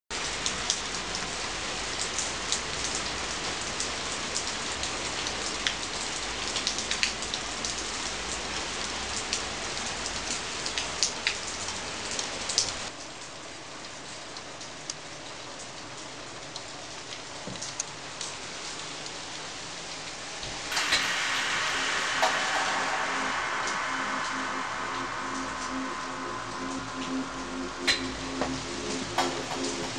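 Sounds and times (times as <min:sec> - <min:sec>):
steady rain: 0:00.1 - 0:29.9.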